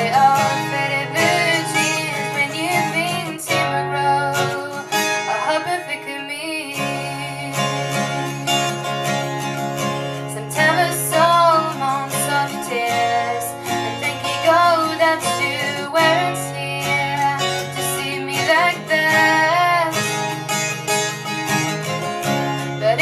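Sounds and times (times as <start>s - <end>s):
woman singing: 0.0s - 8.2s, 10.2s - 20.3s, 22.6s - 23.0s
acoustic guitar strumming: 0.0s - 23.0s.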